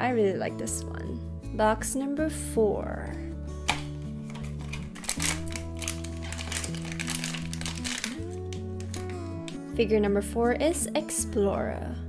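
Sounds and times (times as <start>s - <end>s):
background music with held notes: 0.0s - 12.0s
plastic bag crinkling: 4.2s - 9.6s.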